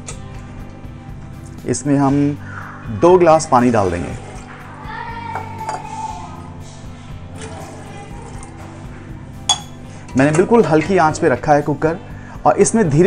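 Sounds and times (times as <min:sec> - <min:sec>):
quiet background music: 0:00.0 - 0:13.0
water splashing into metal pot: 0:07.4 - 0:08.7.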